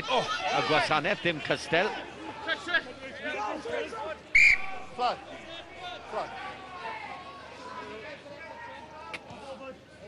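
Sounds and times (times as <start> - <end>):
referee's whistle blast: 4.4 - 4.8.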